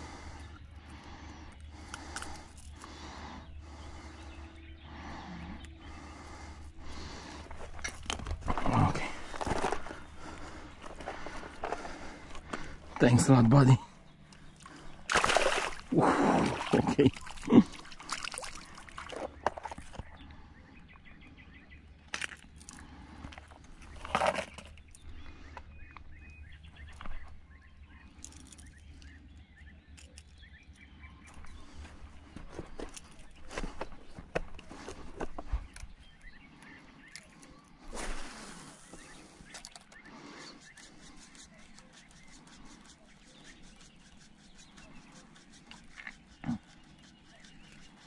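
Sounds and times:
faint bird chirps: 1.4s - 7.5s, 23.8s - 34.2s, 35.5s - 48.0s
hands handling fishing tackle: 1.8s - 2.9s, 7.4s - 13.2s, 22.2s - 25.0s, 31.3s - 36.0s.

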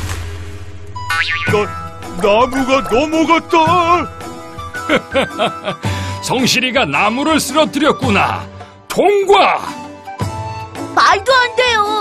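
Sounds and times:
falling tree crash: 0.0s - 3.9s
background music: 0.0s - 12.0s
springy boing: 1.1s - 1.9s.

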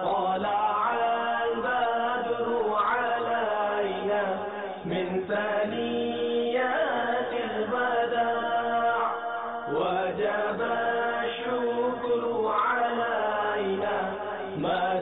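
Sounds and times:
man chanting devotional recitation: 0.0s - 15.0s.

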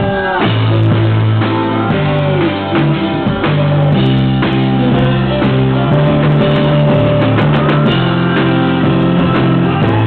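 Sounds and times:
drums: 0.0s - 10.0s
live rock band playing: 0.0s - 10.0s.

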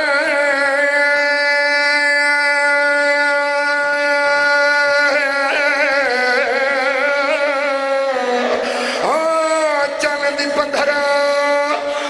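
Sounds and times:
man chanting a long sung note: 0.0s - 12.0s.

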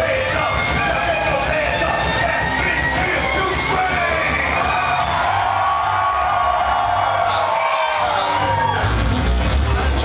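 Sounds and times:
live rock and hip-hop band: 0.0s - 10.0s
crowd cheering and whooping: 2.9s - 10.0s.

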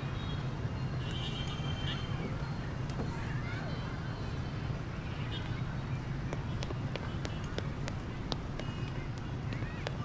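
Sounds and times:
low street rumble: 0.0s - 10.0s
faint distant voices: 1.6s - 10.0s.

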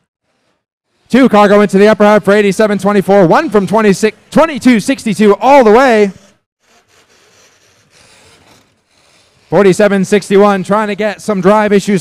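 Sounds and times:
man's voice: 1.1s - 6.2s, 9.6s - 12.0s.

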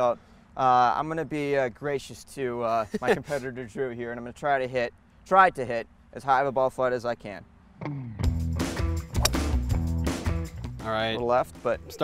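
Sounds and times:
background music with bass line: 7.8s - 12.0s
golf club striking ball: 9.2s - 9.7s.

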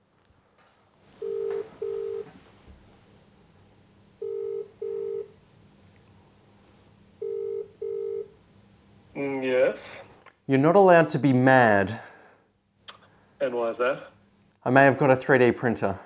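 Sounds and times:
telephone ringback tone: 1.2s - 2.3s, 4.2s - 5.4s, 7.2s - 8.4s.

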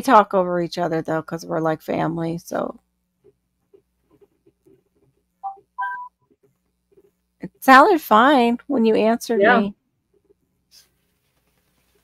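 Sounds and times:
faint low hum: 0.0s - 12.0s
short electronic tones: 5.4s - 6.2s.

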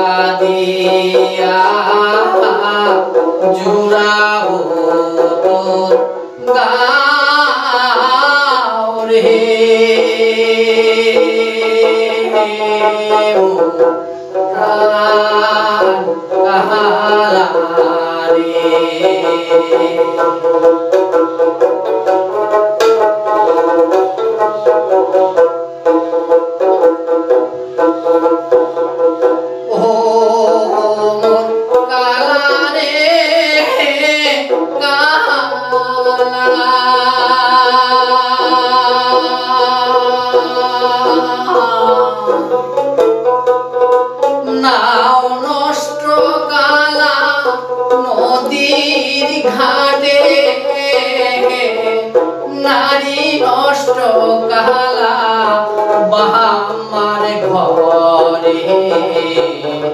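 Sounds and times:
man singing folk song: 0.0s - 24.8s, 29.0s - 59.9s
plucked lute melody: 0.0s - 59.9s.

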